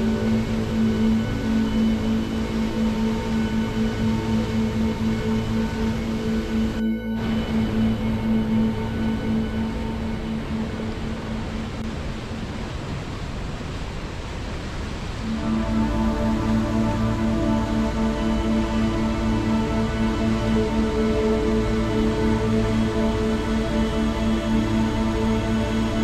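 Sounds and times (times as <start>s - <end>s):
slow ambient music: 0.0s - 13.0s, 15.0s - 26.0s
river rushing in rapids: 10.0s - 26.0s.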